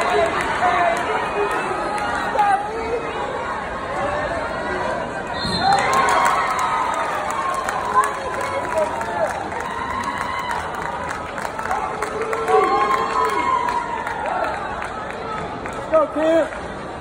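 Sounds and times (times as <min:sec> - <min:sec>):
spectators shouting and cheering: 0:00.0 - 0:17.0.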